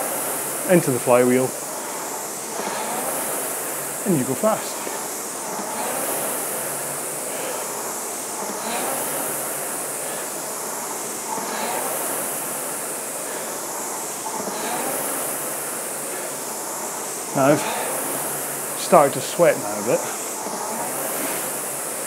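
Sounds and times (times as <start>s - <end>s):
rowing machine flywheel whirring: 0.0s - 22.0s.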